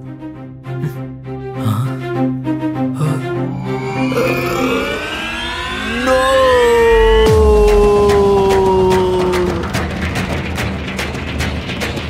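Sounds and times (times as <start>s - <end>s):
electronic tones gliding upward: 3.4s - 7.6s
held synth tone sinking in pitch: 3.4s - 7.6s.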